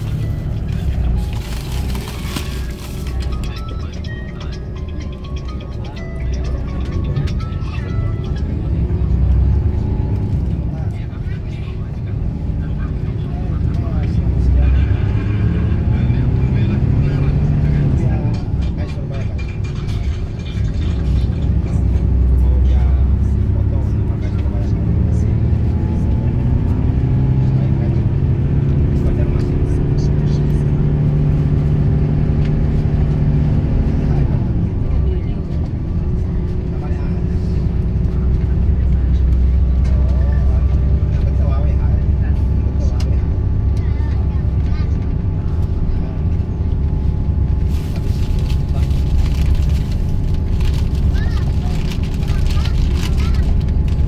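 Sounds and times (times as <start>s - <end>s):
road noise: 0.0s - 54.0s
vehicle engine: 0.0s - 54.0s.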